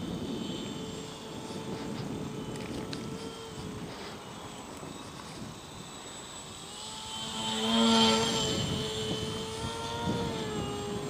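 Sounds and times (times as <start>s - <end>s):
model plane propeller whine: 0.0s - 11.0s.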